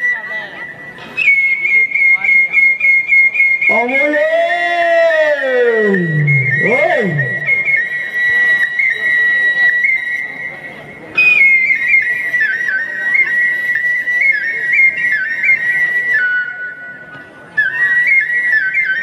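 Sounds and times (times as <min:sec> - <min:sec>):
high whistle-toned melody: 0:05.8 - 0:10.7.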